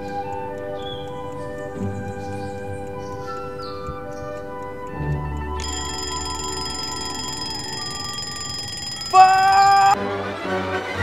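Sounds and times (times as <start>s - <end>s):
music with long held notes: 0.0s - 7.7s, 9.8s - 11.0s
alarm clock ringing: 5.6s - 10.0s.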